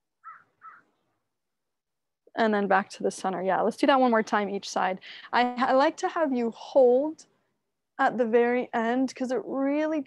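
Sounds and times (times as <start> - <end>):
short bird calls: 0.2 - 1.1.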